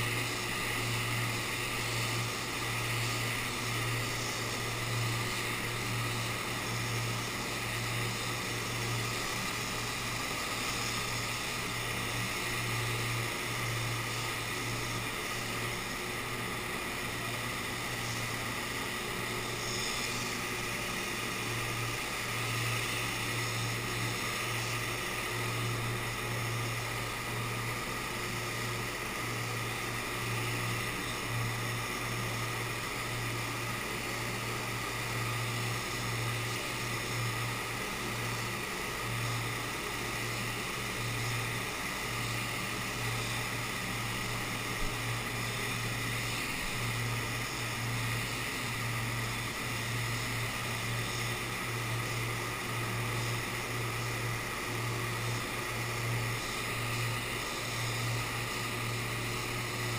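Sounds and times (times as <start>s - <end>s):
low wavering hum: 0.0s - 59.9s
rush of air from ventilation: 0.0s - 59.9s
spray gun spraying paint: 0.0s - 59.9s.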